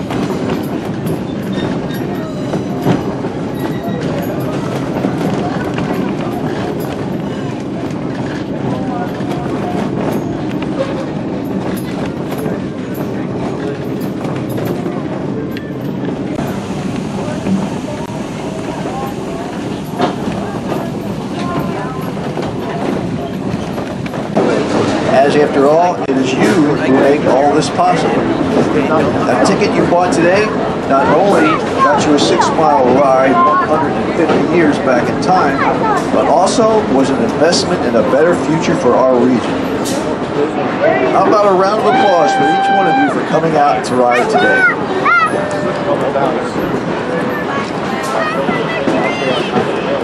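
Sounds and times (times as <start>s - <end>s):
clicks and knocks of train: 0.0s - 50.0s
murmur of passenger chatter: 0.0s - 50.0s
train wheels rumbling on rail: 0.0s - 50.0s.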